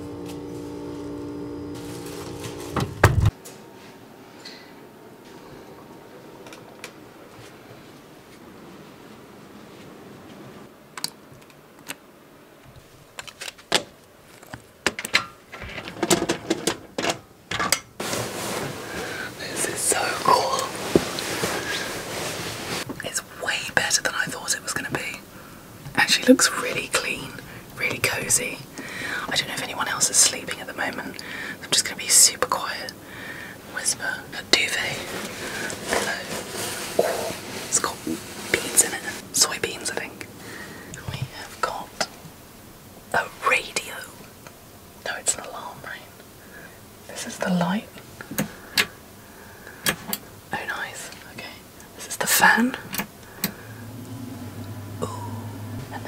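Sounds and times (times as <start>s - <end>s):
woman whispering: 19.4s - 20.8s, 23.0s - 25.2s, 29.2s - 33.0s, 33.7s - 35.1s, 37.7s - 40.2s, 41.0s - 42.1s, 43.1s - 44.2s, 45.0s - 46.2s, 47.1s - 47.9s, 50.5s - 52.8s, 55.0s - 56.0s.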